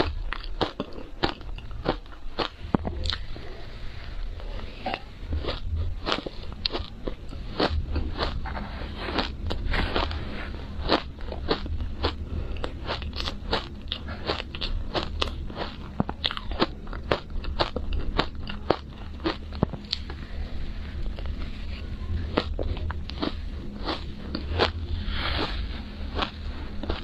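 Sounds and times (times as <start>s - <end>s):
ice crunching while chewed: 0.0s - 3.4s, 4.9s - 20.2s, 21.0s - 27.0s.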